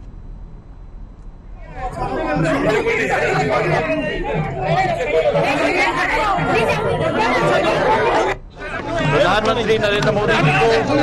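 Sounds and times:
crowd chatter: 1.5 - 11.0.

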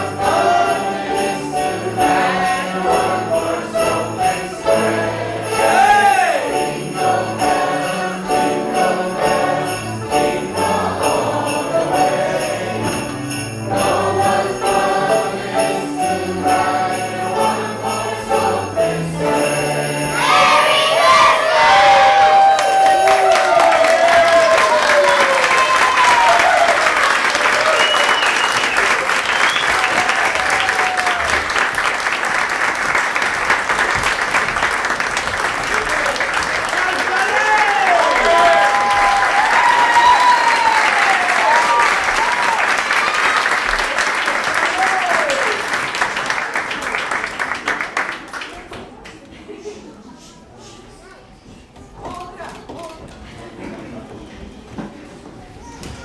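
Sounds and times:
cheers and whoops: 21.2 - 31.5, 37.1 - 43.5, 44.6 - 45.6
audience clapping: 22.2 - 49.3.

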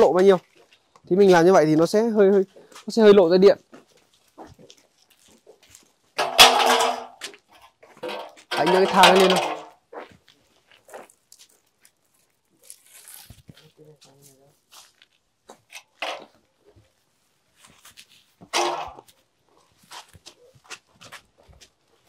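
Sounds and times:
footsteps on concrete: 0.1 - 6.0, 9.7 - 12.0, 13.3 - 15.7, 16.8 - 22.0
wooden ladder knocks and scuffs: 4.4 - 10.1, 17.6 - 19.2.

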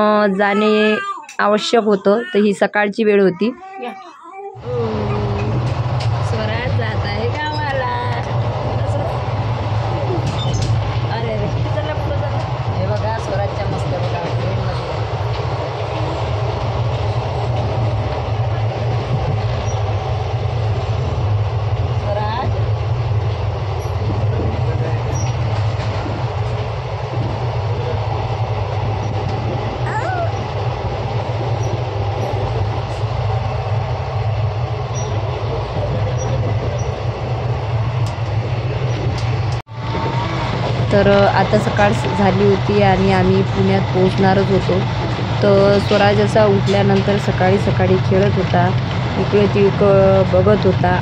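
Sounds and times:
passenger train rumbling: 0.0 - 4.0, 4.6 - 51.0.

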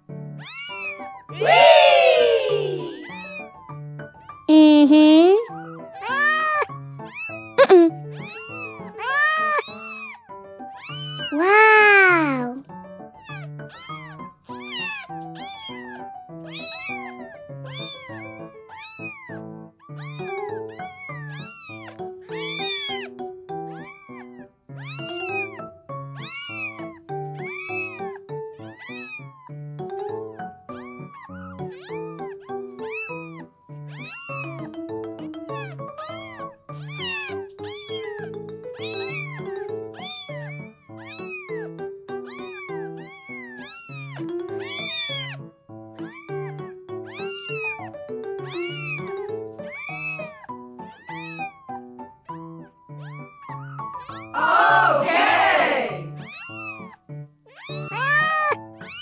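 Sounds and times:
gentle background music: 0.0 - 59.0
kitten meowing: 0.4 - 3.6, 4.5 - 12.6, 13.2 - 29.5, 30.2 - 34.7, 35.5 - 51.9, 52.5 - 54.3, 56.0 - 59.0.

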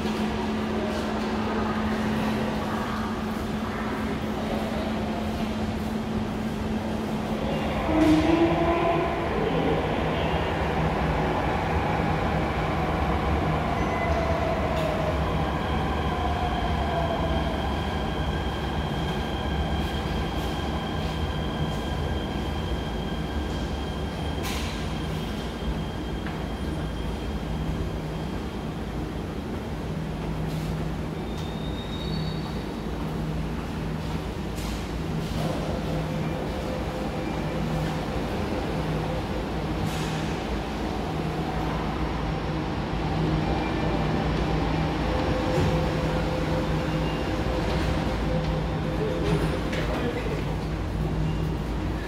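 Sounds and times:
train low rumble: 0.0 - 52.0.

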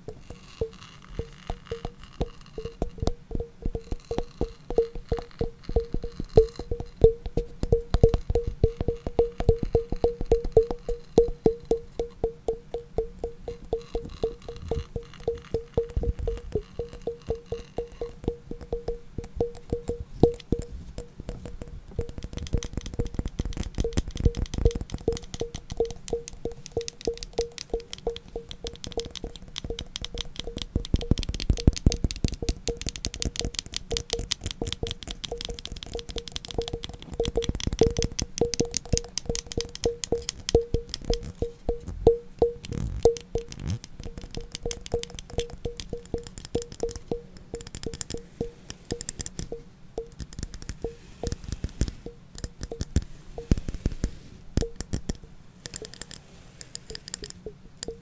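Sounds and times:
fingertip taps and scratches: 0.0 - 58.0.

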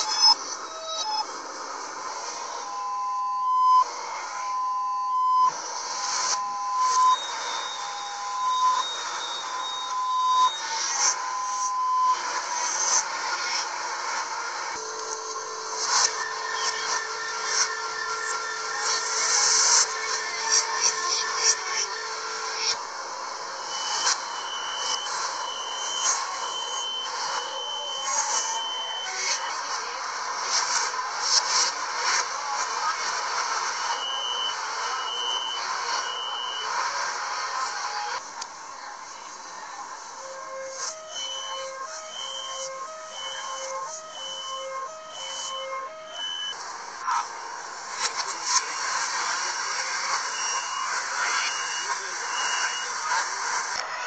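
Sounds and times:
high beeps: 2.6 - 13.0, 14.8 - 29.4, 33.9 - 36.7, 40.3 - 46.6, 49.8 - 53.0
fast beeping: 14.8 - 29.3, 40.5 - 46.6
low buzzer: 14.8 - 29.4, 40.3 - 46.6.

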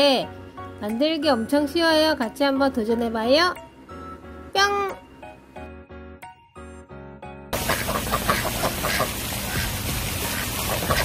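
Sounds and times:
ducks quacking: 7.6 - 11.0.

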